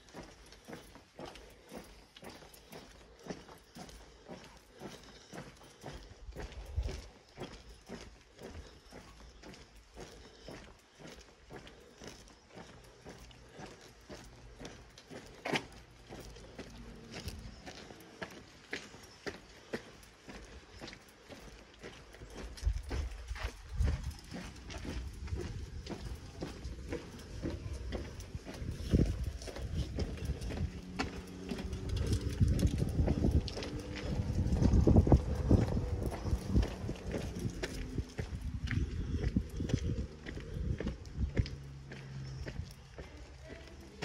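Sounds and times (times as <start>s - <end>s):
footsteps on concrete: 0.0s - 44.0s
low rumble: 22.7s - 42.7s.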